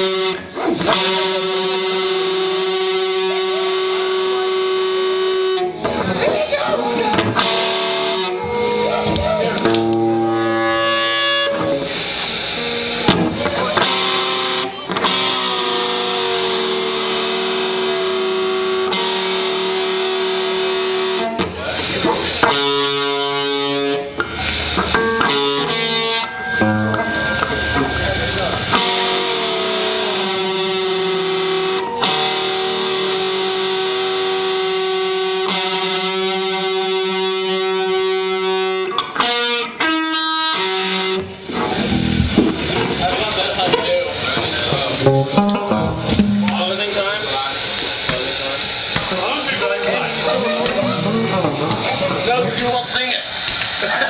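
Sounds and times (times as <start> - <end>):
distorted electric guitar chords: 0.0 - 54.0.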